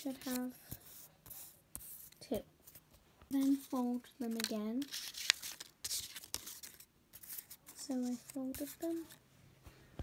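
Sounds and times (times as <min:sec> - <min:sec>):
paper crinkling and rustling: 0:00.0 - 0:00.8, 0:02.7 - 0:09.2
paper cracking: 0:04.2 - 0:09.1.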